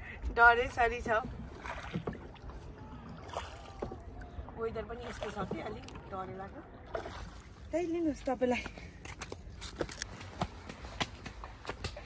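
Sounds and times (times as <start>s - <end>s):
faint water noise: 0.0s - 12.0s.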